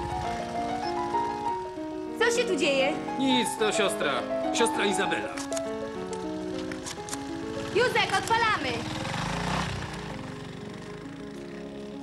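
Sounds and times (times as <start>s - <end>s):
sustained background music notes: 0.0s - 12.0s.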